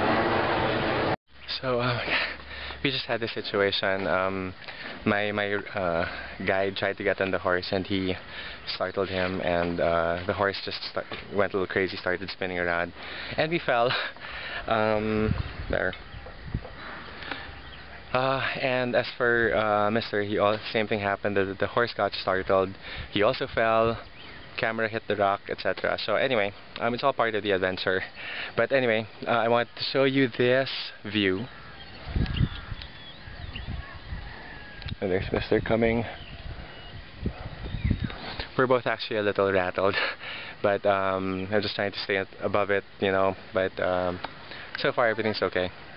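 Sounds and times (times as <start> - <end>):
faint outdoor background noise: 0.0 - 45.9.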